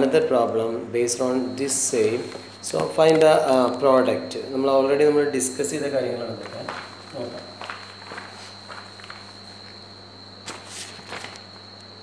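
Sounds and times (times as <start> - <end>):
cloth rubbing plastic sheet: 6.2 - 9.8, 10.4 - 11.6.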